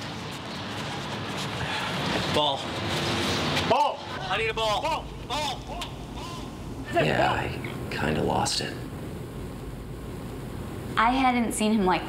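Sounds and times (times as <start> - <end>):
room tone hiss: 3.3 - 12.0.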